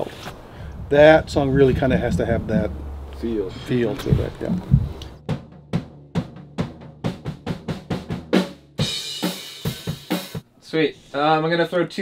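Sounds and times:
snare and bass drum hits: 0:04.1 - 0:10.4.

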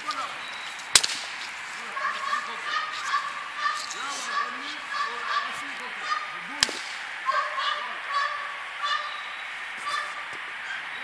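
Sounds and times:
animal calling: 0:01.8 - 0:06.6, 0:07.2 - 0:11.0.

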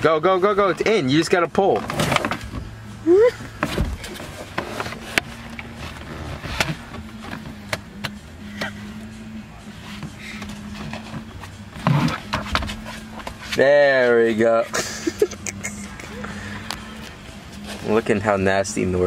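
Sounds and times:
person laughing: 0:03.0 - 0:03.5, 0:14.6 - 0:16.6
car seat frame knocking and clicking: 0:03.4 - 0:08.7.

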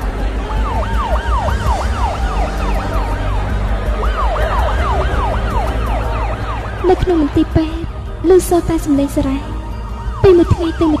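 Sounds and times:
emergency vehicle siren: 0:00.0 - 0:11.0.

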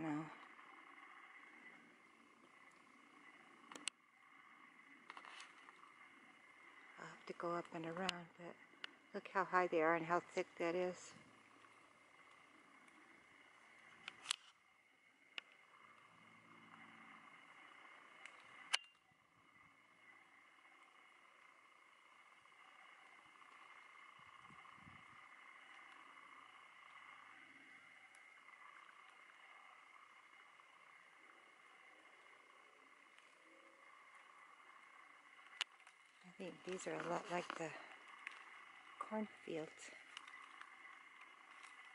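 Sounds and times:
faint high-pitched hum: 0:00.0 - 0:41.9
sharp clicks: 0:03.6 - 0:04.0, 0:06.8 - 0:09.0, 0:11.5 - 0:14.6, 0:17.3 - 0:19.0, 0:22.8 - 0:41.9.

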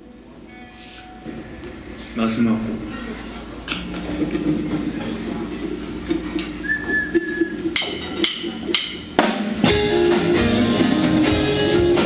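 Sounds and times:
electric guitars sustained notes: 0:00.0 - 0:12.0
drum kit hard hits: 0:07.6 - 0:12.0.

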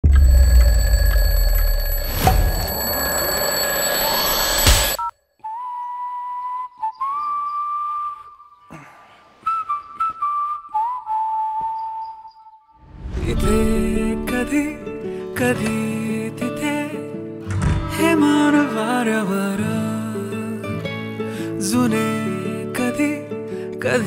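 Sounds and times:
smartphone alarm tone: 0:00.0 - 0:05.1.

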